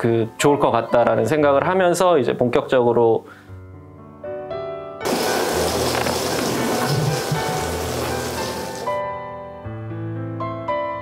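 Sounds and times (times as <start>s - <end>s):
soft piano music: 0.0s - 11.0s
water spraying and splashing: 5.1s - 9.0s.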